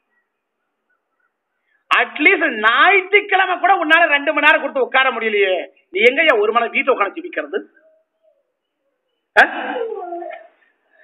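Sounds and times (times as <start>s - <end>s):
man speaking: 1.9s - 7.8s.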